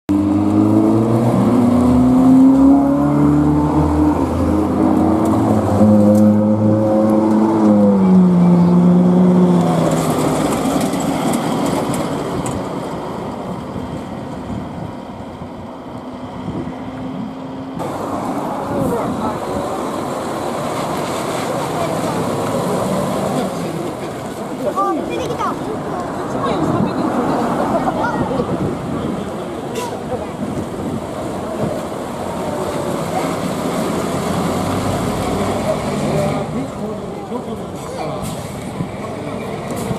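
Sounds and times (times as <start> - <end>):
vehicle engine passing: 0.1 - 14.0, 15.6 - 39.9
voices: 17.8 - 39.9.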